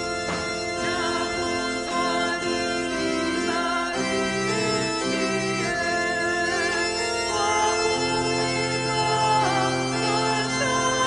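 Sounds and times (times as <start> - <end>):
choir singing a hymn: 0.0 - 11.0
organ-style keyboard chords: 0.0 - 11.0.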